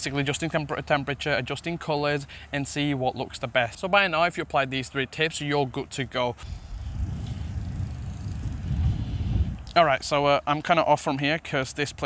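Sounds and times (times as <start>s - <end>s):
wind buffeting microphone: 6.4s - 10.4s.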